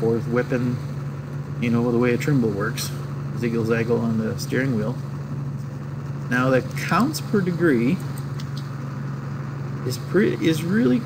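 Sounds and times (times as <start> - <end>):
low-pitched hum: 0.0 - 11.0.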